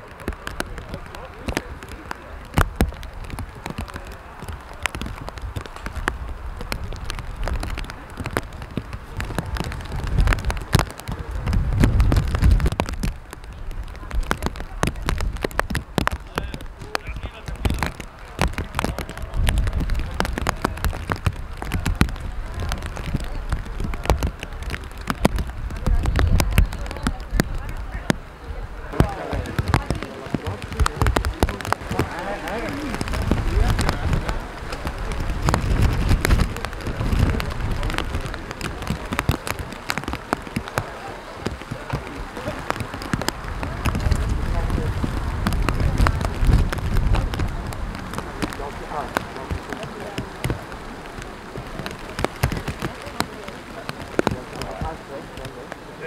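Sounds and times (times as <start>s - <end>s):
indistinct voices: 0.0s - 56.0s
rain patter: 0.0s - 56.0s
wind rumbling on microphone: 0.0s - 56.0s.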